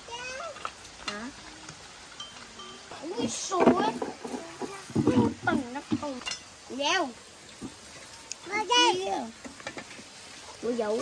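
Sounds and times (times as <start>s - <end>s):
children talking and calling out: 0.0s - 7.4s, 8.1s - 9.4s.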